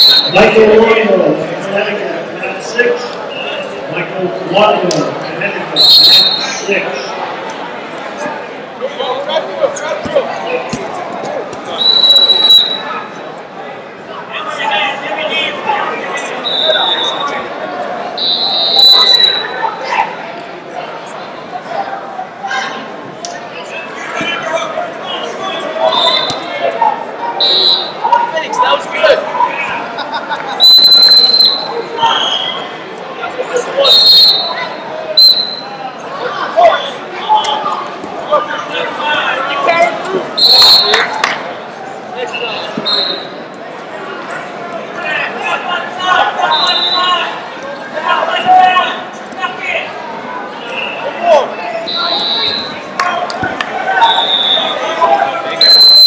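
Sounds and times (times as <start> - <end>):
referee's whistle blasts: 0.0 - 0.6, 5.8 - 6.6, 11.8 - 13.0, 16.4 - 17.3, 18.2 - 19.6, 25.8 - 26.6, 27.4 - 28.1, 30.6 - 32.6, 33.8 - 35.8, 40.4 - 41.1, 42.8 - 43.4, 46.4 - 47.2, 51.8 - 52.8, 54.0 - 55.0, 55.6 - 56.0
crowd chatter and shouting: 0.0 - 56.0.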